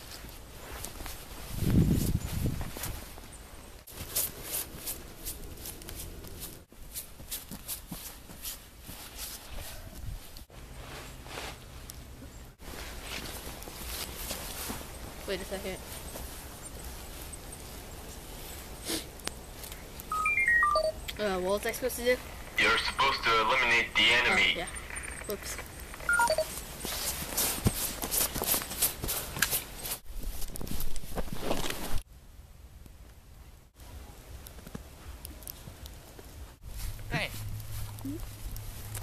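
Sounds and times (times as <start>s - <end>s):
footsteps crunching in snow: 0.0s - 11.9s, 12.6s - 18.7s, 24.6s - 32.0s, 36.6s - 39.0s
short electronic beeps: 20.1s - 21.1s, 22.6s - 26.5s.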